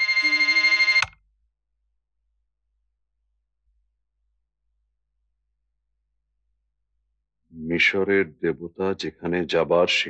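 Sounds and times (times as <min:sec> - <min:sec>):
bell ringing fast: 0:00.0 - 0:01.1.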